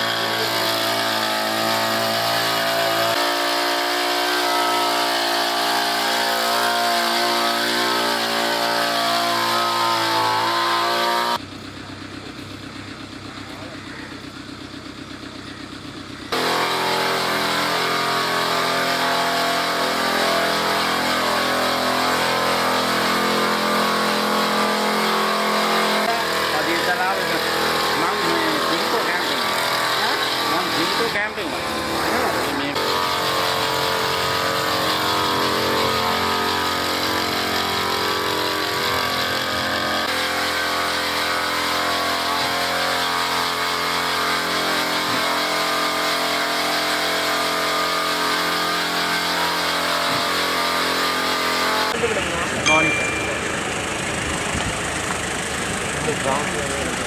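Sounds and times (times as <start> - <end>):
power sprayer engine running: 0.0 - 57.0.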